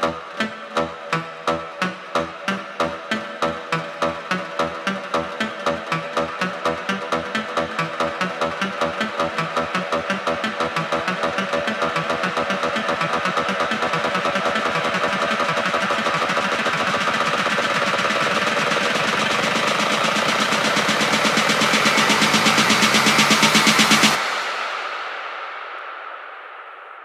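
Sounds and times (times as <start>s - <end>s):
fast pulsing electronic figure: 0.1s - 24.2s.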